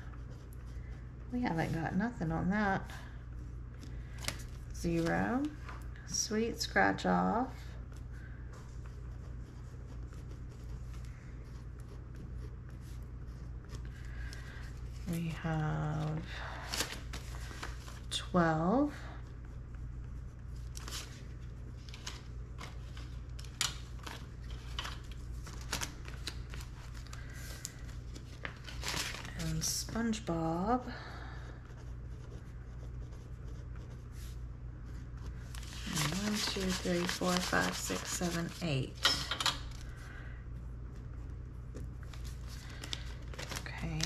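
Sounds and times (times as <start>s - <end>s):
steady low hum: 0.0s - 44.0s
paper and plastic rustling: 21.8s - 29.8s, 35.5s - 39.0s, 42.0s - 44.0s.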